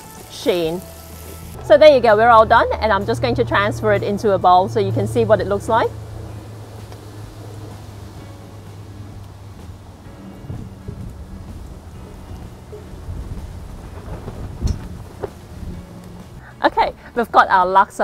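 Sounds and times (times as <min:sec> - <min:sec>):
steady low rumble: 0:01.6 - 0:17.4.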